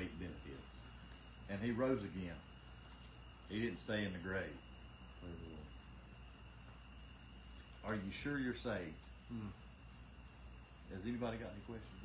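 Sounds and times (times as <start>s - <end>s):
high-pitched background whine: 0.0s - 12.0s.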